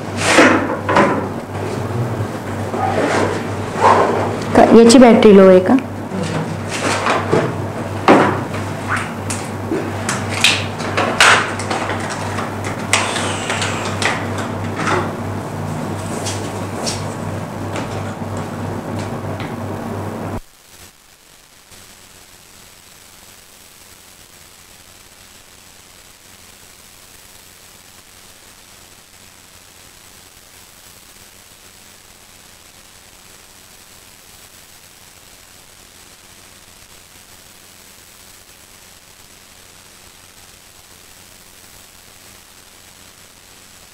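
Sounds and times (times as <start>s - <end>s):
faint steady hiss: 0.0s - 43.9s
low electrical hum: 0.0s - 43.9s.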